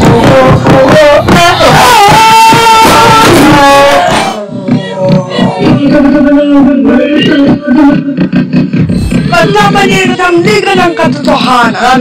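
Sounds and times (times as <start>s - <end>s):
pitched low notes breaking up: 8.8s - 10.6s.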